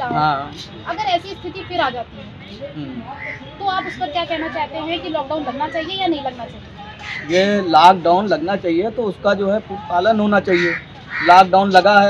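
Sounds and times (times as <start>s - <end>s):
man talking: 0.1s - 0.7s, 7.3s - 12.0s
crow cawing: 3.1s - 4.8s, 7.0s - 7.5s, 10.5s - 11.5s.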